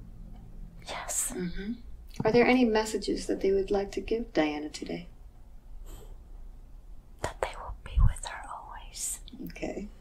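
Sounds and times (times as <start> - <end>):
woman whispering softly: 0.8 - 1.7, 7.2 - 9.9.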